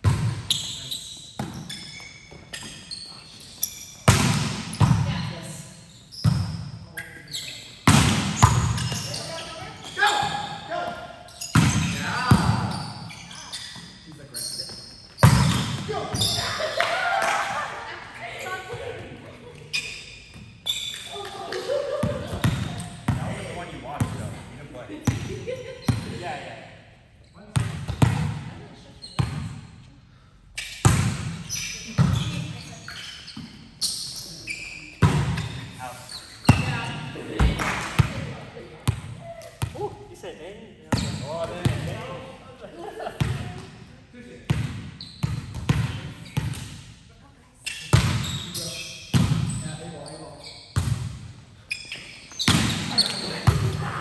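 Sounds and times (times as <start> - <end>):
volleyball slaps in a gymnasium: 0.0 - 40.1, 40.9 - 54.0.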